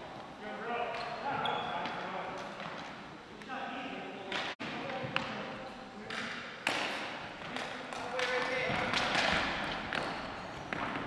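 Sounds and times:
players' voices echoing: 0.4s - 10.2s
hockey sticks clacking: 6.0s - 11.0s
ball striking hardwood floor: 8.6s - 11.0s.

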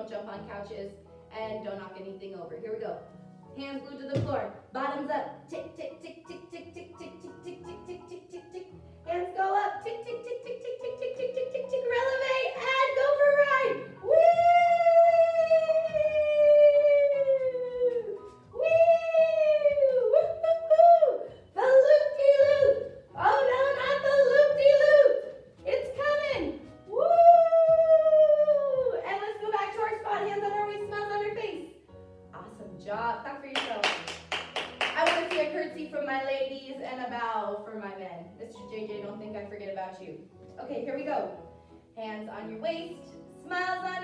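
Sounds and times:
background music: 0.0s - 44.0s
woman's high woo calls: 14.0s - 21.8s, 26.9s - 29.1s
quick hand claps: 33.6s - 35.5s.

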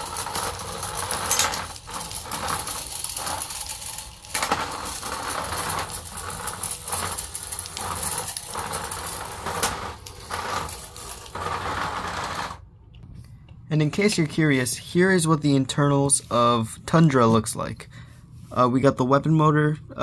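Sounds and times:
wheels running over plastic tiles: 0.0s - 12.6s.

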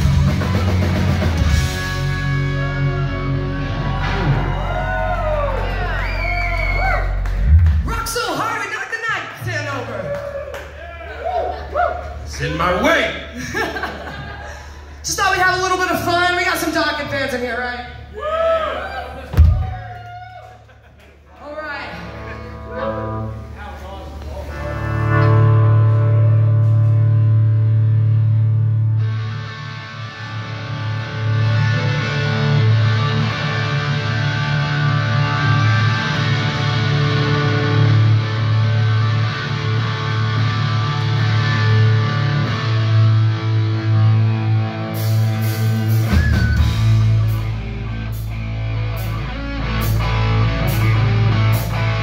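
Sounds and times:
distorted electric guitars sustained chord: 0.0s - 4.9s, 24.5s - 46.0s, 46.7s - 52.0s
live rock band playing: 0.0s - 6.0s, 21.9s - 23.6s, 24.5s - 52.0s
low drum hit: 19.4s - 19.9s.

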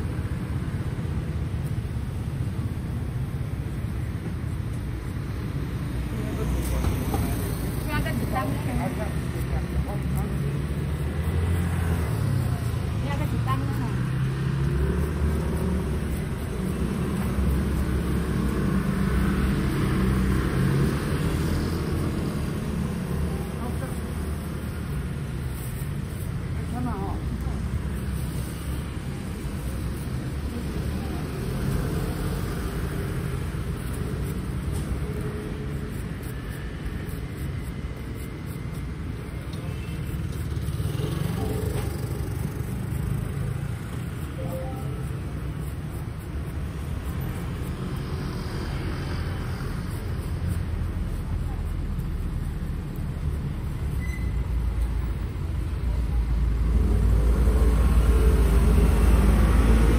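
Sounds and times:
cars and scooters passing: 0.0s - 59.9s
people talking: 6.1s - 10.6s, 12.5s - 14.2s, 23.2s - 24.2s, 26.6s - 27.7s.

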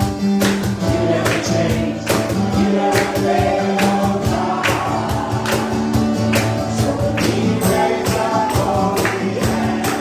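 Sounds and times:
acoustic guitar: 0.0s - 10.0s
man singing: 0.8s - 5.8s, 6.5s - 10.0s.

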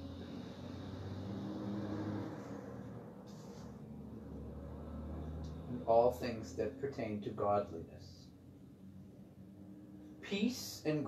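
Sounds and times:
faint low drone: 0.0s - 7.2s
steady low hum: 0.0s - 11.0s.

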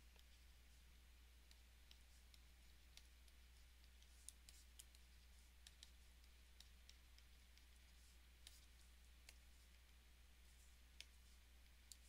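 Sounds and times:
low steady hum: 0.0s - 12.0s
stylus tapping on pen tablet: 1.4s - 10.0s.

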